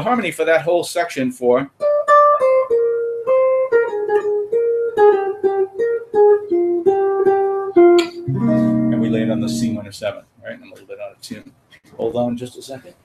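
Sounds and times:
jazz guitar plucked chords: 1.8 - 9.9.

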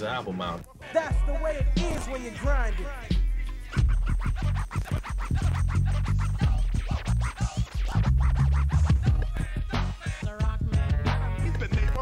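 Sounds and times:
hip hop beat: 0.0 - 12.0
turntable scratching: 0.0 - 12.0
heavy bass line: 1.1 - 12.0.

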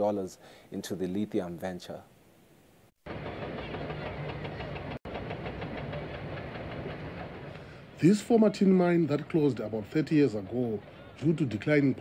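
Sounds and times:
heavy machinery humming and clattering: 3.1 - 7.6.

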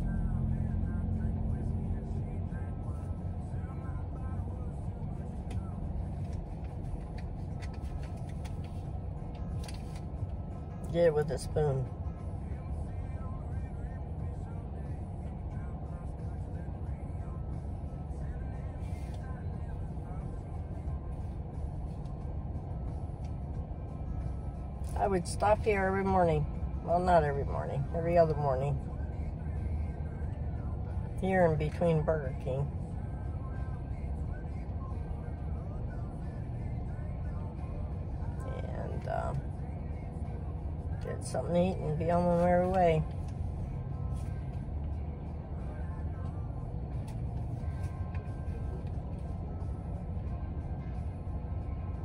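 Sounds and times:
car engine idling: 0.0 - 52.0
faint music: 0.0 - 52.0.

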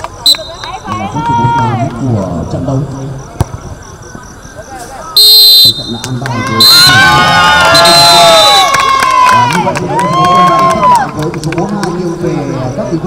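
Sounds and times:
people shouting and cheering: 0.0 - 2.3, 5.8 - 13.0
referee's whistle blasts: 0.2 - 1.0, 5.2 - 8.7.

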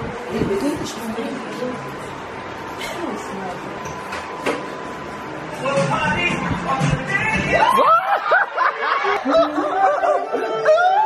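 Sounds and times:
people laughing: 7.6 - 11.0.

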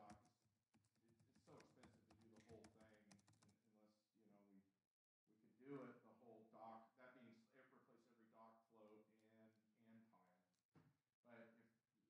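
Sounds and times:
typing on computer keyboard: 0.0 - 3.6.

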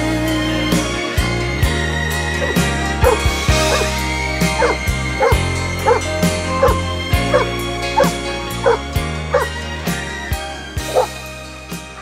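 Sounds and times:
song playing: 0.0 - 12.0
dog barking: 2.4 - 9.5, 10.9 - 11.2.

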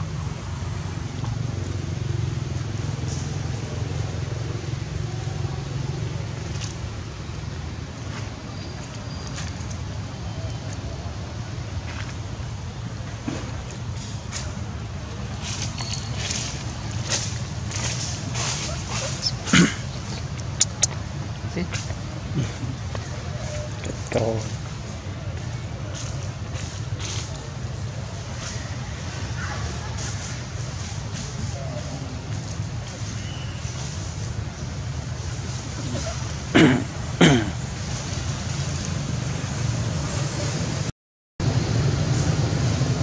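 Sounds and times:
macaque call: 18.5 - 21.0
sharp clicks: 20.3 - 21.0.

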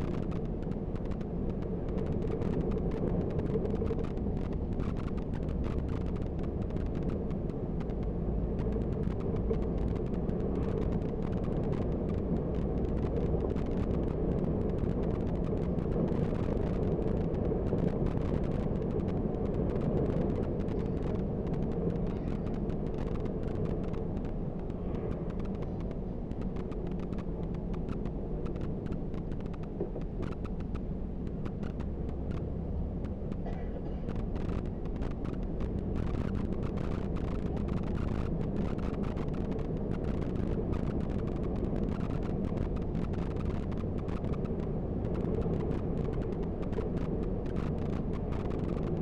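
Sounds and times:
tyres on the road: 0.0 - 49.0.

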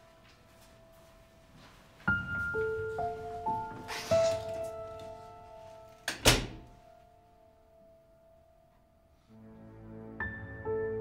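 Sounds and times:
soft background music: 0.0 - 11.0
door click and thud: 6.1 - 6.7.

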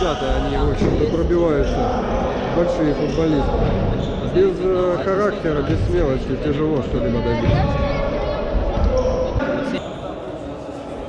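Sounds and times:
voices in echoing gym: 0.0 - 11.0.

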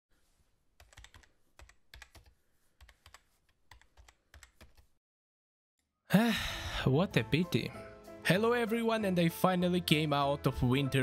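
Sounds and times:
faint keyboard typing: 0.8 - 5.0.

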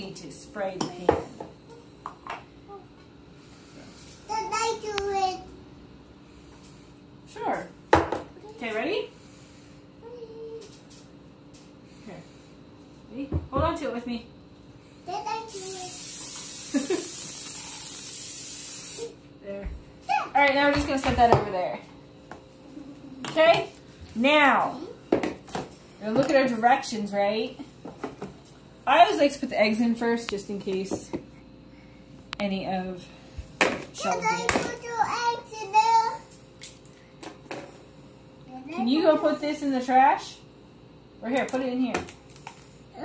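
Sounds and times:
aerosol spray hissing: 15.5 - 19.2.

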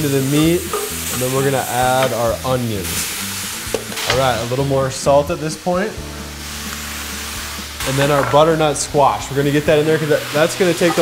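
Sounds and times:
background music: 0.0 - 11.0
meat and onions sizzling in a pot: 0.0 - 11.0.

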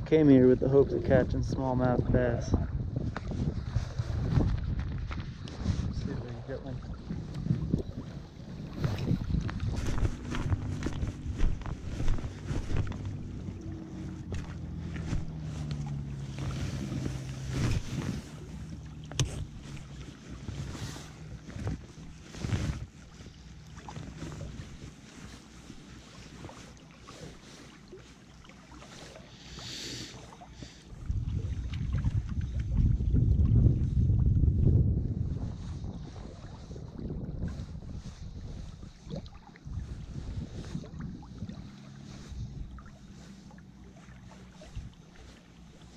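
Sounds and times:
wind buffeting microphone: 0.0 - 25.7, 30.6 - 45.9
low hum: 0.0 - 26.9.

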